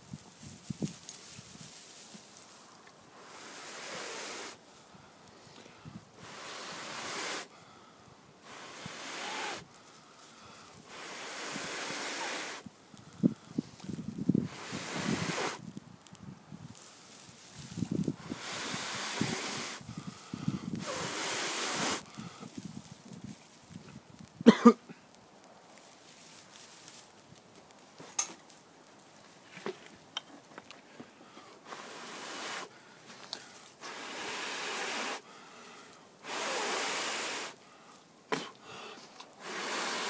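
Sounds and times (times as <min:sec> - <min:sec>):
dry grass rustling: 0:00.0 - 0:40.0
blowing breath into tinder: 0:03.1 - 0:04.6, 0:05.7 - 0:09.8, 0:10.4 - 0:13.7, 0:14.4 - 0:15.6, 0:18.0 - 0:22.6, 0:31.4 - 0:40.0.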